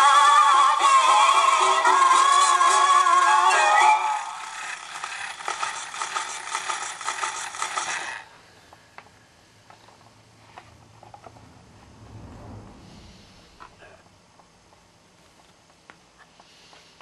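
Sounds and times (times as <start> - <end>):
tinny gramophone playback: 0.0 - 8.0
toy tonearm clicks and rattles: 4.4 - 8.2.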